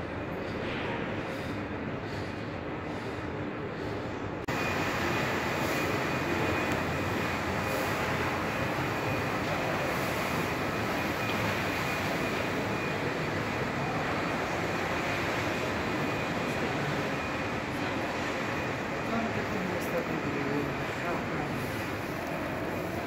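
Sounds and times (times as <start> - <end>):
shopping mall ambience: 0.0 - 23.0.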